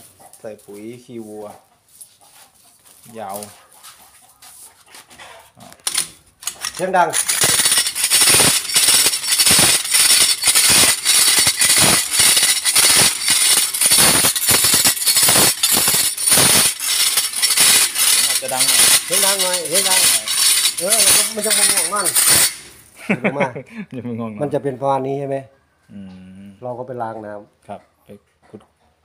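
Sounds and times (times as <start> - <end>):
blade rasping sugarcane rind: 6.5 - 22.8.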